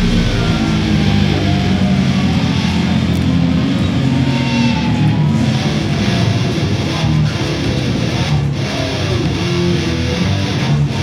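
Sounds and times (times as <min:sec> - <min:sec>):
distorted electric guitars and bass: 0:00.0 - 0:11.0.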